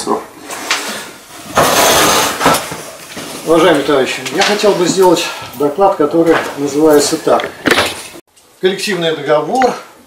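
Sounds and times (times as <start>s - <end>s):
chair scraping across floor: 0.4s - 5.4s.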